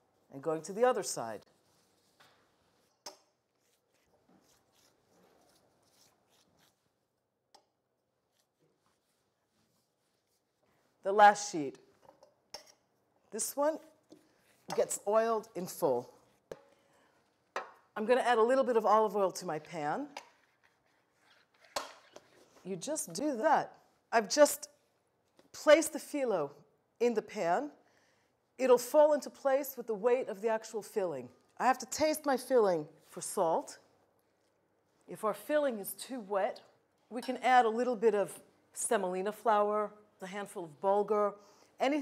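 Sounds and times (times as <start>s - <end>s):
pastry sheets rustling: 1.4s - 7.1s, 8.2s - 11.0s.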